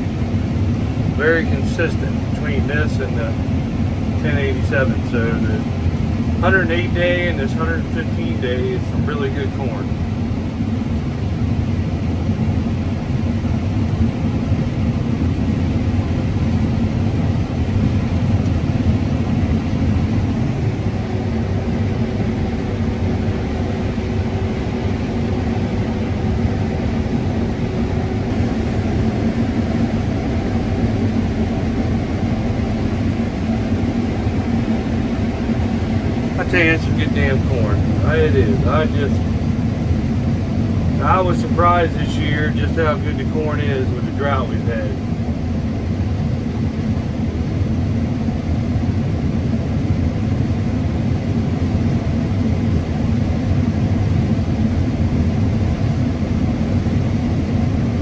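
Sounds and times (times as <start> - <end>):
combine harvester engine drone: 0.0 - 58.0.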